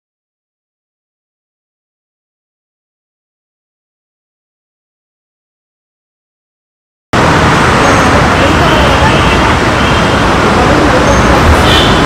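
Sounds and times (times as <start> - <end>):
road traffic: 7.2 - 12.0
voices: 7.7 - 12.0.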